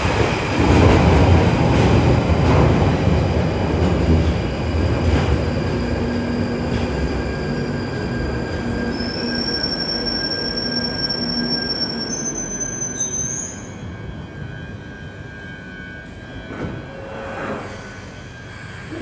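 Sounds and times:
train clanks: 0.0s - 8.5s
train wheels rumbling on rail: 0.0s - 19.0s
high-pitched brake squeal: 5.4s - 19.0s.

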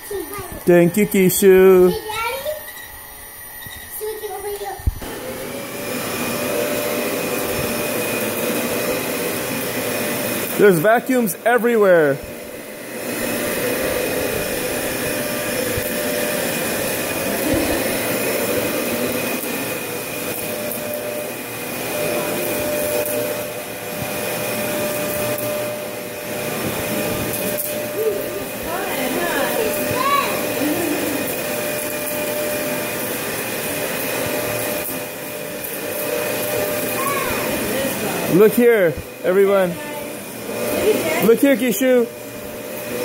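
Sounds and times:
vacuum cleaner running: 0.0s - 43.0s.

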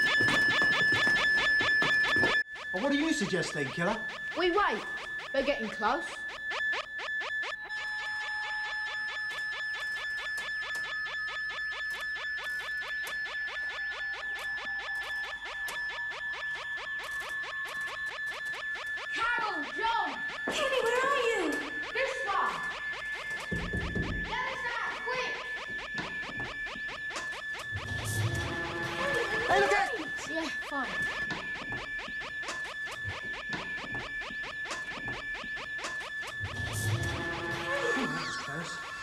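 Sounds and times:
electronic sci-fi music: 0.0s - 39.0s.

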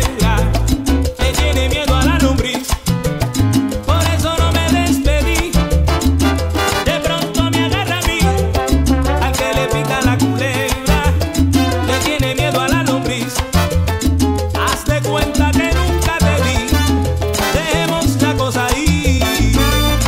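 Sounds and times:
salsa band playing: 0.0s - 20.0s.

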